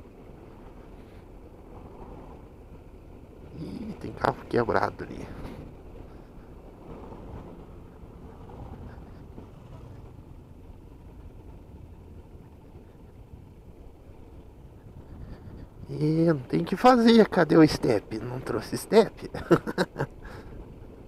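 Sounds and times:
motorcycle engine rumble: 0.0s - 21.0s
tyres on cobblestones: 0.0s - 21.0s
wind: 0.0s - 21.0s.

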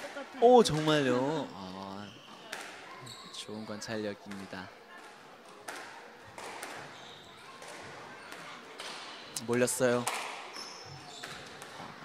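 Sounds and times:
squash ball knocks: 2.5s - 2.8s, 4.3s - 6.9s, 10.0s - 10.5s, 11.2s - 11.9s
steady court hum: 4.2s - 12.0s.

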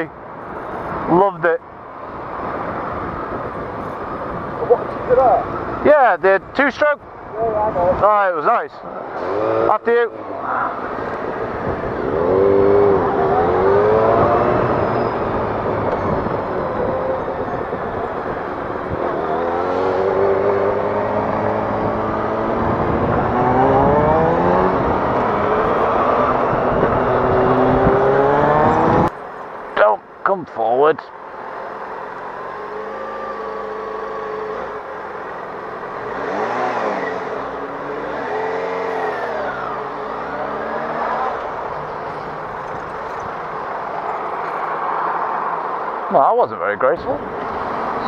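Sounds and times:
road noise: 0.0s - 48.0s
wind noise on microphone: 2.2s - 5.8s, 10.8s - 29.2s
motorcycle engine accelerating: 11.6s - 29.1s.

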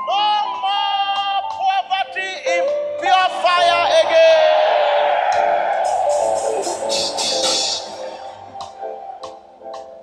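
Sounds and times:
instrumental accompaniment: 5.2s - 10.0s.

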